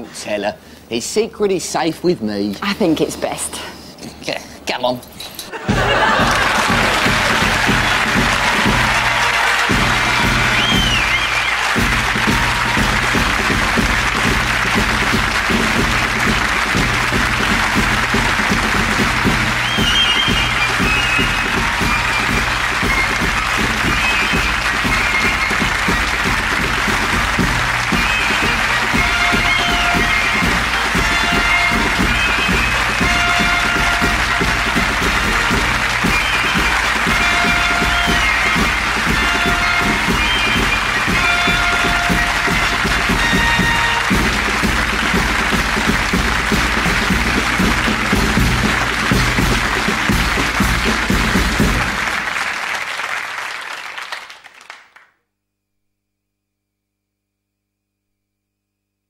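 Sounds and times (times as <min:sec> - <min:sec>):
sitcom theme music: 0:05.6 - 0:52.8
studio audience applause: 0:05.6 - 0:55.2.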